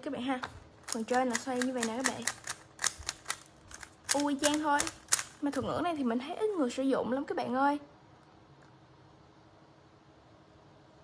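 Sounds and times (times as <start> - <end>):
plastic puzzle cube clicking: 0.8 - 5.5.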